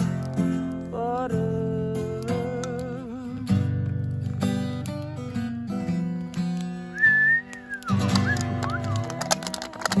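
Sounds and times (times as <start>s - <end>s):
acoustic guitar strumming: 0.0s - 10.0s
sharp claps: 6.4s - 10.0s
shrill human whistle: 6.9s - 9.0s.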